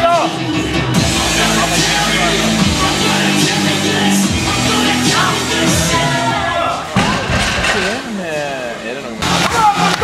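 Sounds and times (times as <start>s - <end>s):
barbell landing thud: 7.0s - 8.0s.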